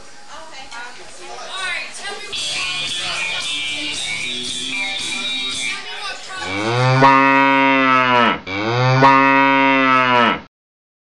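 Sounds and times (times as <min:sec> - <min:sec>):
music: 0:02.4 - 0:06.0
cow mooing: 0:06.4 - 0:10.5.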